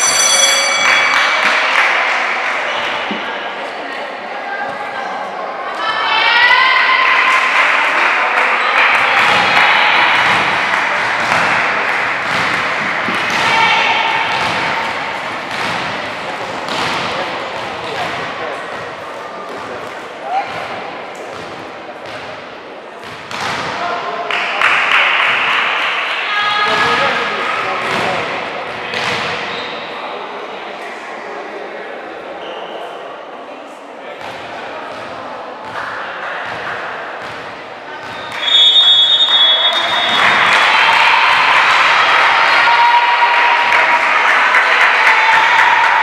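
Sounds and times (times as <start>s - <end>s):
people calling and shouting: 0.0s - 46.0s
volleyball being struck: 9.2s - 18.8s.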